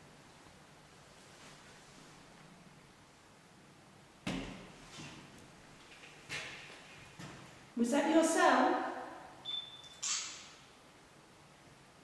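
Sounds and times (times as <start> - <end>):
high-pitched electronic beep: 9.4 - 10.0.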